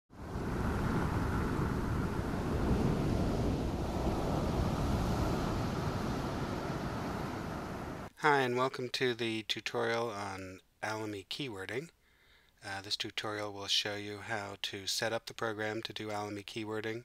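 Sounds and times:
ocean surf breaking on beach: 0:00.1 - 0:08.1.

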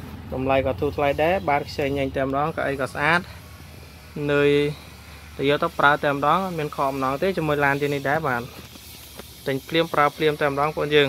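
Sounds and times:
person talking: 0:00.3 - 0:03.3.

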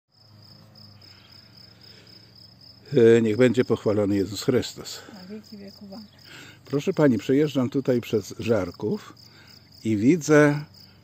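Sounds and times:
cricket chirping: 0:00.1 - 0:11.0.

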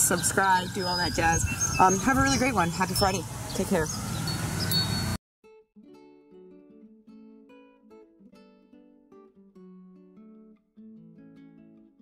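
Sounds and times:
outdoor background hiss: 0:00.0 - 0:05.2
quiet acoustic guitar music: 0:05.4 - 0:12.0.

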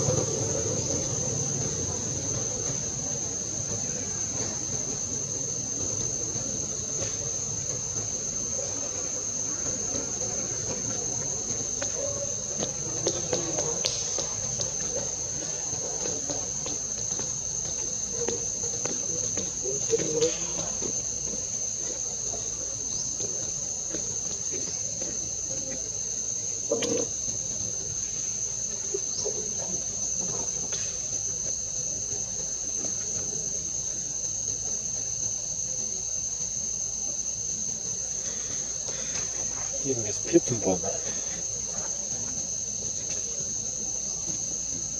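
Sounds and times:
insect chorus drone: 0:00.0 - 0:44.9.

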